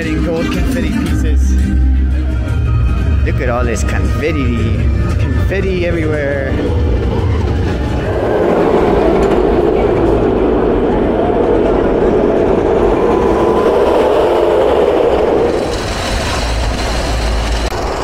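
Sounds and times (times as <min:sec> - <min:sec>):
roller coaster rumbling on track: 0:02.3 - 0:18.0.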